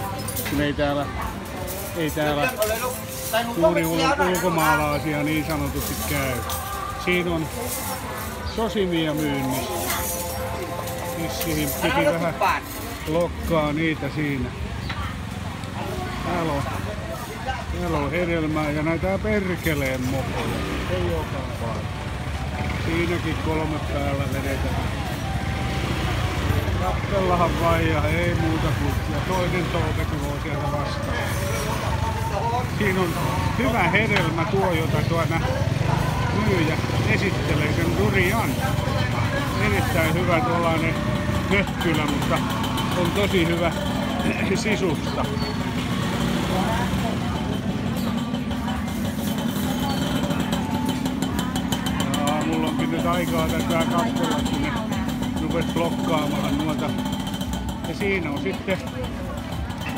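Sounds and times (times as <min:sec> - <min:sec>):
motor scooter rumbling: 0:00.0 - 0:59.9
people talking: 0:00.0 - 0:59.9.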